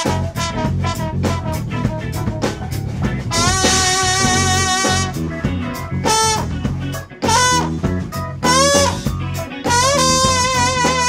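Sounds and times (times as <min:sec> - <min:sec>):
funk band playing: 0:00.0 - 0:11.0
trombone phrases with bending notes: 0:00.0 - 0:11.0.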